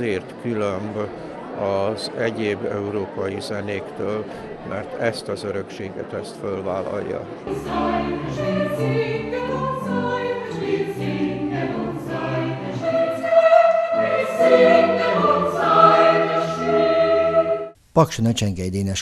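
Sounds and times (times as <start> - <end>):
mixed choir singing: 7.4 - 17.8
string accompaniment: 7.4 - 17.8.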